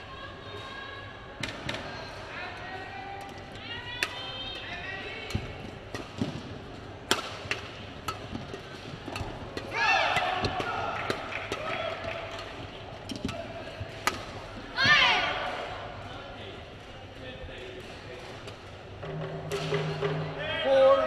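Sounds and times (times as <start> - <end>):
court shoes squeaking: 1.7 - 15.0
racket striking shuttlecock: 4.0 - 15.7.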